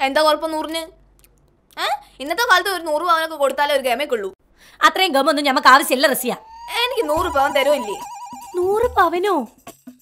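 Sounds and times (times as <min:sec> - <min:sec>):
warbling electronic ringtone: 0:06.3 - 0:09.0.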